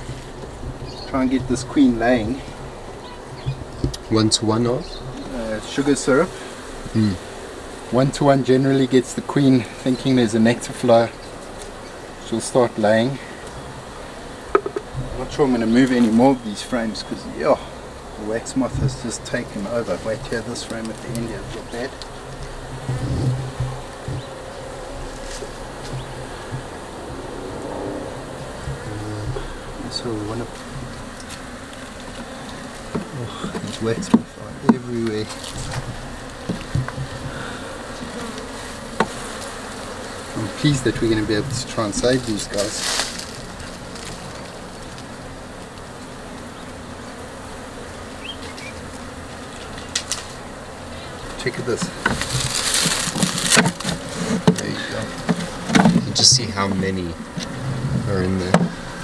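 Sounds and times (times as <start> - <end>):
honeybees buzzing: 0.0 - 59.0.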